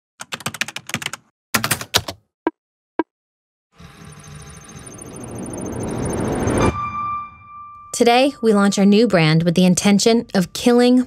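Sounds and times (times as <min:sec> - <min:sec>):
computer keyboard typing: 0:00.2 - 0:02.2.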